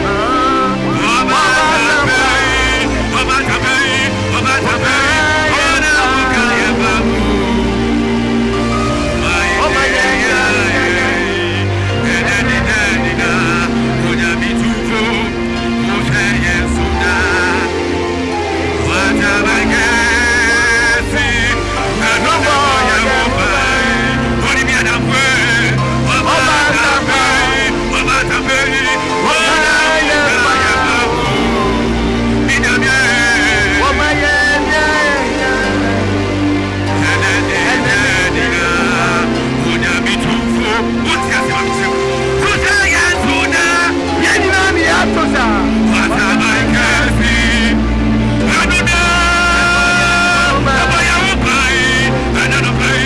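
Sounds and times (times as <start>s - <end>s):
held bass notes: 0.0s - 53.0s
man singing worship song: 0.0s - 53.0s.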